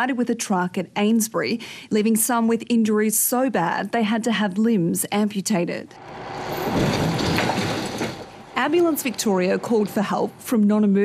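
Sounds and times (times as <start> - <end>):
vehicle passing: 5.9 - 10.5.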